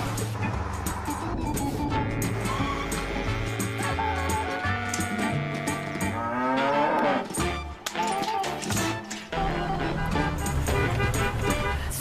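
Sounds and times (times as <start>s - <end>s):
background music: 0.0s - 12.0s
cow mooing: 2.0s - 7.4s.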